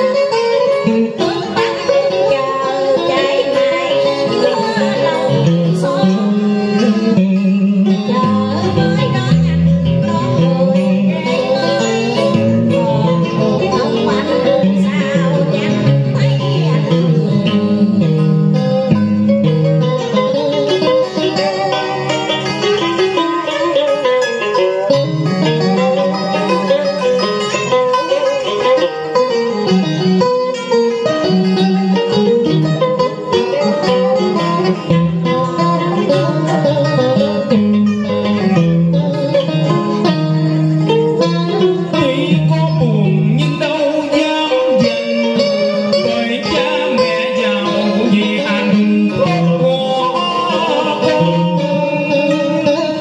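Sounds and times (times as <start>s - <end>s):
karaoke backing track: 0.0s - 53.0s
plucked strings: 0.0s - 53.0s.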